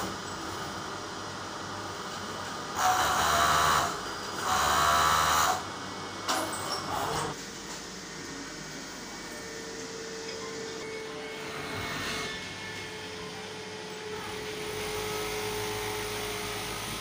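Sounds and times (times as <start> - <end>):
sewing machines humming: 1.7 - 5.8, 10.6 - 17.0
thin steady whine: 7.3 - 17.0.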